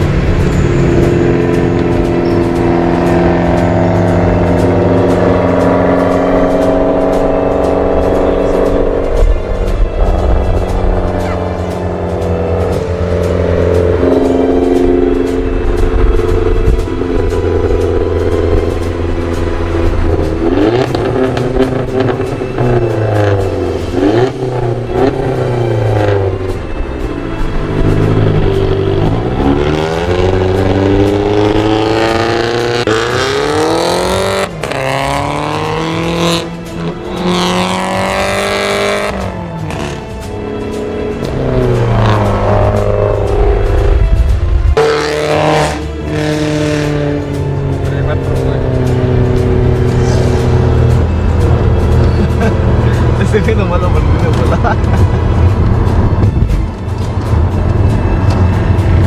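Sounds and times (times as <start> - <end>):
car engines revving through gears: 0.0 - 59.0.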